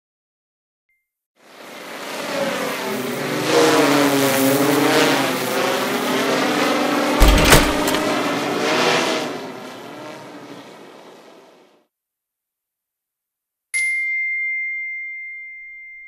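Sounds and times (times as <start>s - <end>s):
drone propellers whirring: 1.8s - 8.9s
heavy thud: 7.2s - 8.1s.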